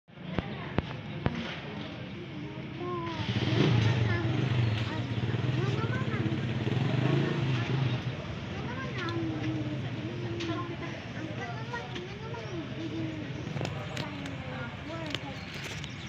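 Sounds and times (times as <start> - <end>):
indistinct background voices: 0.1 - 16.0
low engine-like hum: 1.9 - 16.0.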